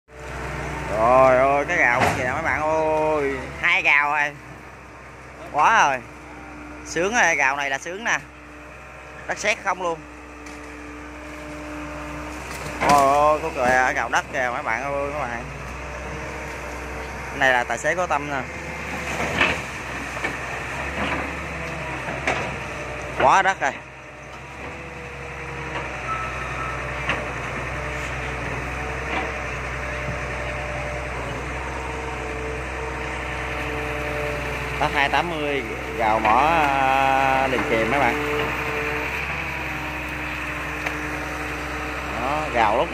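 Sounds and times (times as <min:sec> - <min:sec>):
excavator diesel engine running: 0:00.1 - 0:42.9
hydraulics whining: 0:00.1 - 0:42.9.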